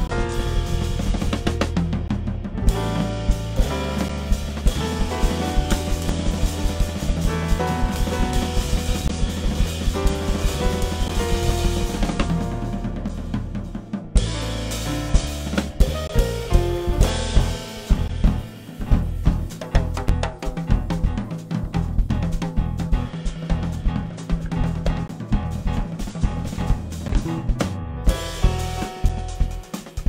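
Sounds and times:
bass and keyboard chords: 0.0s - 30.0s
drum kit playing: 0.0s - 30.0s.

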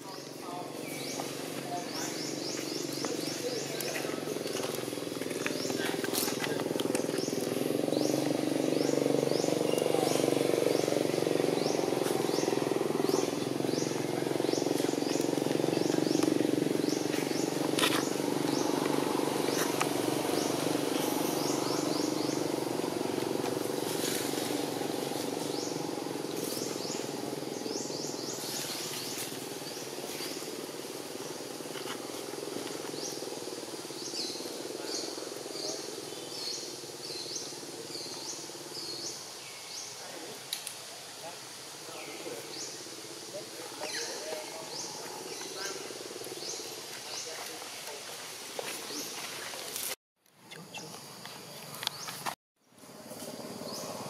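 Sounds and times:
low outdoor murmur: 0.0s - 54.0s.

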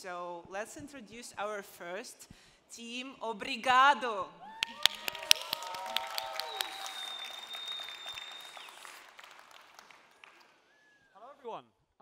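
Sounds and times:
audience applauding: 4.6s - 10.9s.

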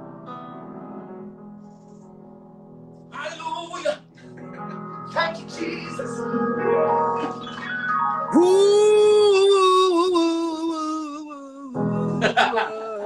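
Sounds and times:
sustained keyboard chords: 3.2s - 10.6s
man singing gospel melisma: 8.3s - 13.0s.

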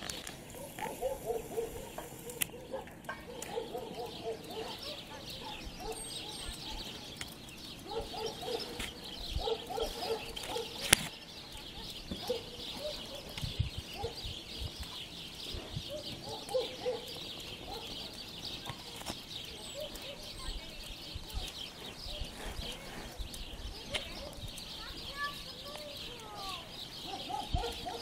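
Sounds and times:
sparrows chirping: 0.0s - 28.0s.

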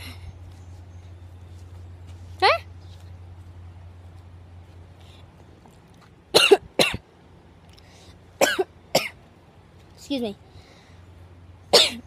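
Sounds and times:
boy coughing: 6.3s - 7.0s, 8.4s - 9.2s, 11.7s - 12.0s.

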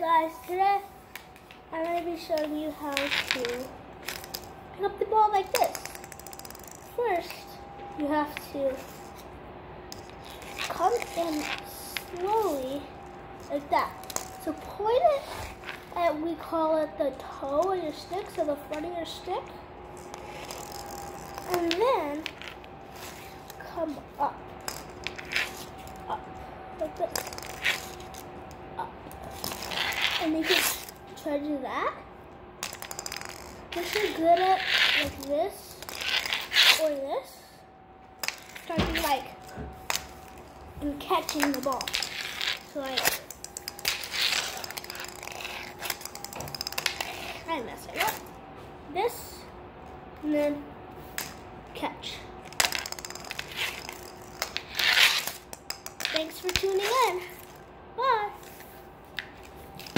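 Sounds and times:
plastic ball and stick clicking: 5.4s - 7.4s, 32.6s - 34.2s, 41.2s - 47.3s, 52.4s - 57.6s
ball scraping on tile floor: 20.0s - 23.6s, 24.6s - 26.0s, 26.9s - 28.5s, 29.2s - 31.0s, 32.6s - 36.8s, 41.4s - 48.4s, 52.5s - 57.6s.

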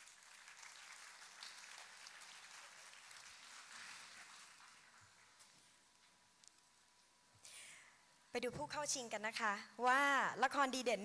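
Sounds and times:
faint audience applause: 0.0s - 5.6s.

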